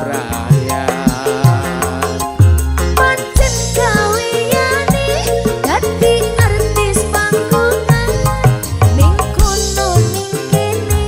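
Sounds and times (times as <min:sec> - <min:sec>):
dangdut band music: 0:00.0 - 0:11.0.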